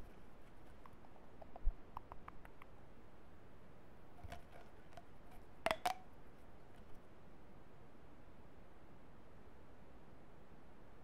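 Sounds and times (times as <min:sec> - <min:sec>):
sharp taps on hard object: 0:05.7 - 0:06.0.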